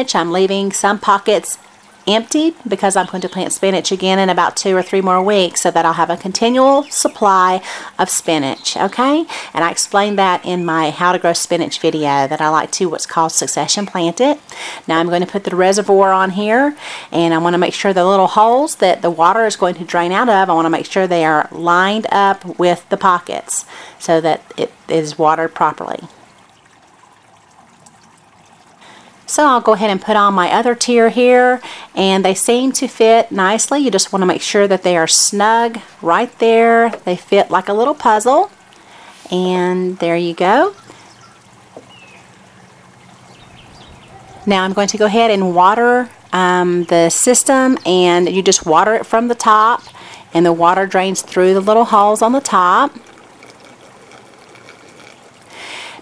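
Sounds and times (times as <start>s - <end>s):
faint steady hiss: 0.0s - 56.0s
water splashing into plastic planter: 19.2s - 31.6s, 40.0s - 56.0s.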